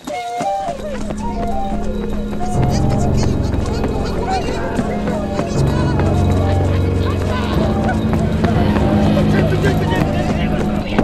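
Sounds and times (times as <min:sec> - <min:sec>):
flute playing short notes: 0:00.0 - 0:11.0
voices: 0:00.0 - 0:11.0
deeper drone: 0:00.5 - 0:11.0
low steady drone: 0:00.5 - 0:11.0.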